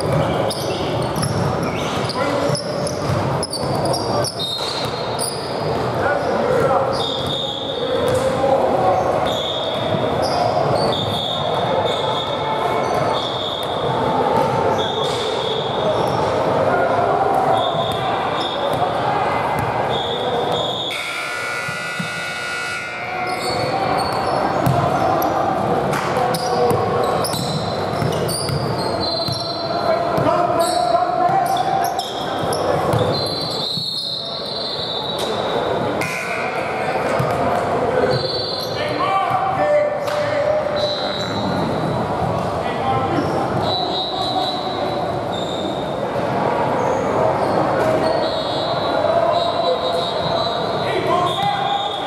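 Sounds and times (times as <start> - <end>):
sneakers squeaking: 0.0 - 16.5, 17.3 - 38.9, 40.7 - 46.0, 46.7 - 52.0
gym background noise: 0.0 - 52.0
shoes squeaking on hardwood floor: 26.3 - 29.7.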